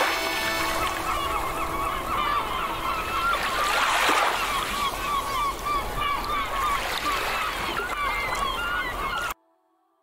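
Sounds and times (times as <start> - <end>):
many birds calling: 0.0 - 9.4.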